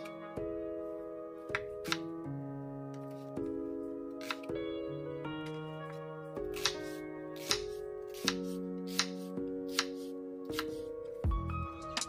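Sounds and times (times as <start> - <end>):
background music with sustained notes: 0.0 - 12.0
knife slicing onion on cutting board: 6.6 - 10.8.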